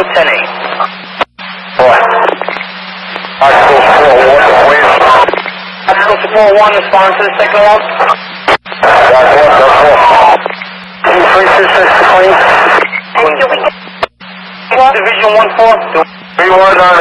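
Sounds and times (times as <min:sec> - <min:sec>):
radio voices over scanner: 0:00.0 - 0:17.0
steady low hum: 0:00.0 - 0:17.0.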